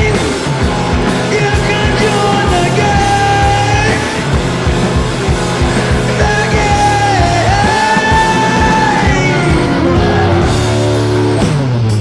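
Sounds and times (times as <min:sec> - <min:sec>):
bass line: 0:00.0 - 0:12.0
drums keeping a steady beat: 0:00.0 - 0:12.0.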